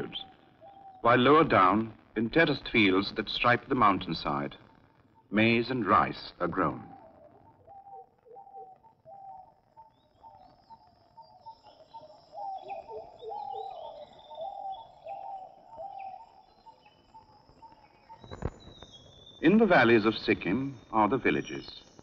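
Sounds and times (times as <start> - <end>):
low repeated bird calls: 0.0 - 22.0
high bird chirps: 6.9 - 19.5.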